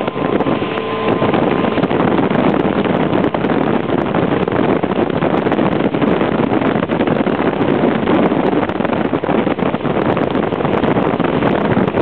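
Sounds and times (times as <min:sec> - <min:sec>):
faint whine: 0:00.0 - 0:05.0
small boat motor running: 0:00.0 - 0:12.0
wind rushing on microphone: 0:00.0 - 0:12.0.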